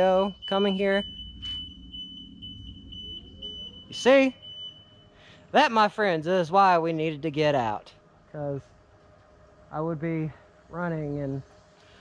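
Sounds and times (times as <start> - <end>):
low rumble: 0.0 - 5.0
high-pitched electronic alarm tone: 0.0 - 6.0.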